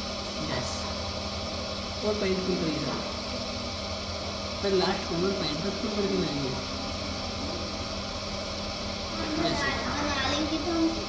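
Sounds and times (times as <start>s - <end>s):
potter's wheel motor hum: 0.0s - 11.0s.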